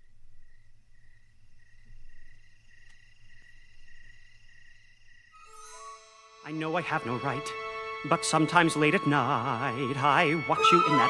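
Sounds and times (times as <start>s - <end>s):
pulsing chirping: 3.8s - 10.6s
descending musical notes: 5.4s - 11.0s.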